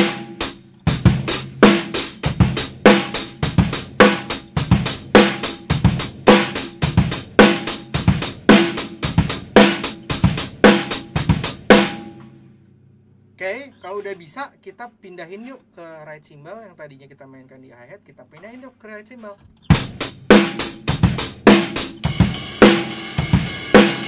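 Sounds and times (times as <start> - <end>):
drum kit playing slow beat: 0.0 - 12.6, 19.7 - 24.0.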